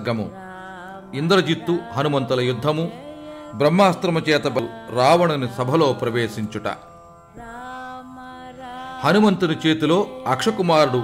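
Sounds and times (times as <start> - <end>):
soft devotional instrumental music: 0.0 - 11.0.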